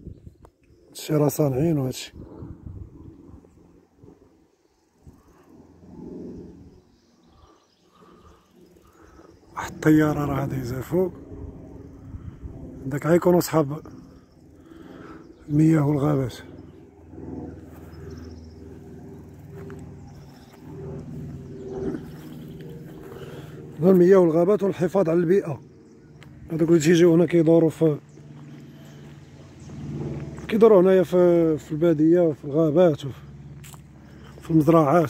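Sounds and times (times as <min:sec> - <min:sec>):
aircraft drone overhead: 0:00.0 - 0:35.0.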